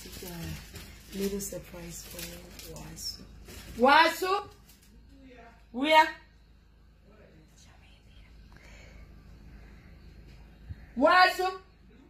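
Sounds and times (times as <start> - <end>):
low steady rumble: 0.0 - 12.0
faint whispering voices: 7.1 - 8.9.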